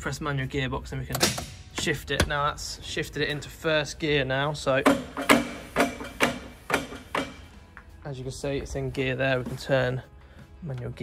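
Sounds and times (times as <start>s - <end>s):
sharp metal clunks: 1.1s - 2.5s, 4.8s - 7.6s.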